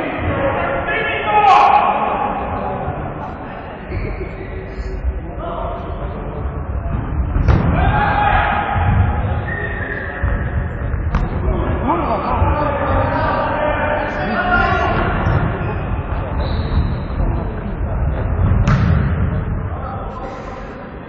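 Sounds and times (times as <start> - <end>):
players shouting: 0.0 - 2.9, 7.4 - 10.5
sharp ball strike: 7.4 - 7.9, 11.0 - 11.4, 18.6 - 19.3
ball thuds: 18.5 - 19.2.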